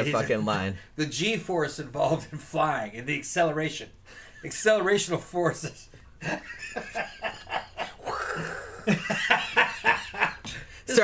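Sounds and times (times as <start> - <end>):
people laughing hard: 6.2 - 10.5.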